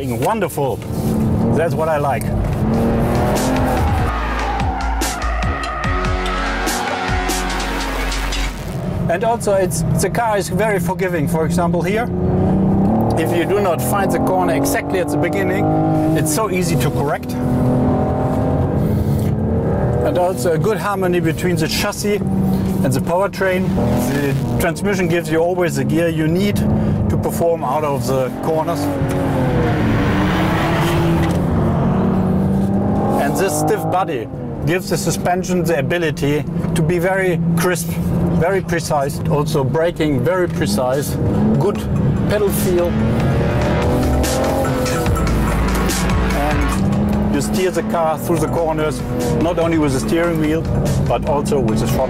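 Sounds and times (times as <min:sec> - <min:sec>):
tires squealing: 0:00.8 - 0:08.9, 0:12.4 - 0:35.9, 0:37.4 - 0:52.0
music with steady beat: 0:02.6 - 0:08.8, 0:42.9 - 0:47.3
car engine running under load: 0:36.0 - 0:52.0.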